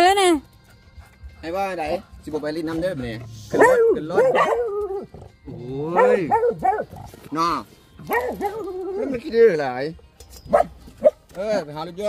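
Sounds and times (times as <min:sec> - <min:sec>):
dogs whining and howling: 0:03.3 - 0:07.1, 0:08.0 - 0:09.5.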